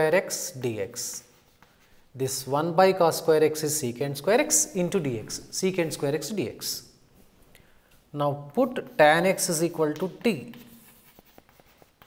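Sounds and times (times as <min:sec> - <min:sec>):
chalk tapping: 0:01.0 - 0:02.0, 0:08.5 - 0:12.0
chalk scratching on blackboard: 0:01.0 - 0:02.1, 0:08.8 - 0:12.0.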